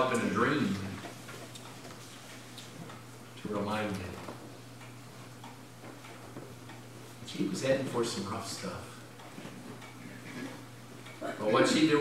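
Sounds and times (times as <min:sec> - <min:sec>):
steady low hum: 0:00.0 - 0:12.0
faint regular ticking: 0:00.2 - 0:12.0.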